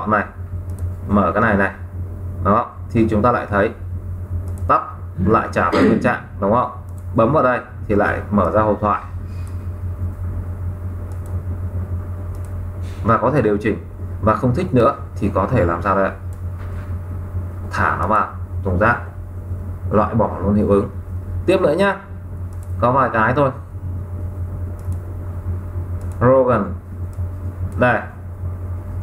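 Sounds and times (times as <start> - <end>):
steady low hum: 0.0 - 29.0
mouse clicks: 0.7 - 0.9, 4.4 - 4.7, 11.1 - 11.4, 12.3 - 12.6, 22.5 - 22.8, 24.8 - 25.0, 26.0 - 26.2.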